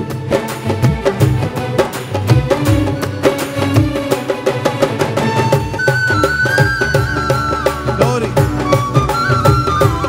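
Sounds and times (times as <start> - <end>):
hand drums: 0.0 - 10.0
keyboard: 0.0 - 10.0.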